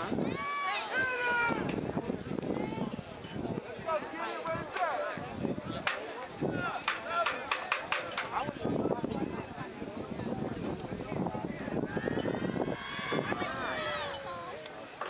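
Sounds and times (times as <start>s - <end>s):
people shouting: 11.9s - 14.2s.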